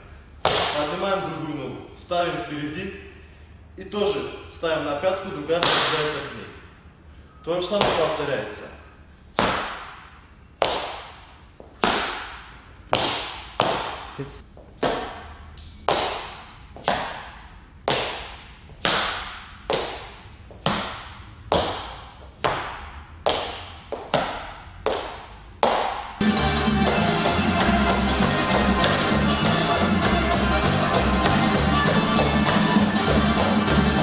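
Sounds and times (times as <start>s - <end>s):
dress shoes striking wooden floor: 17.9s - 26.2s, 28.5s - 30.2s
music: 26.2s - 34.0s.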